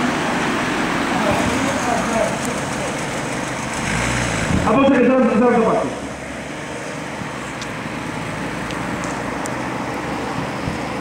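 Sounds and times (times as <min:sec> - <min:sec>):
car driving by: 0:00.0 - 0:11.0
road traffic noise: 0:00.0 - 0:11.0.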